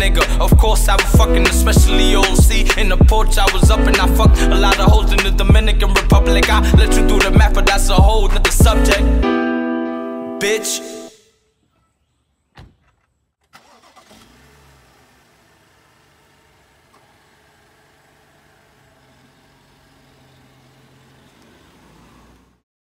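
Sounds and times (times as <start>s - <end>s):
car engine starting and idling: 0.0s - 9.2s, 13.4s - 22.6s
thump: 12.5s - 13.1s.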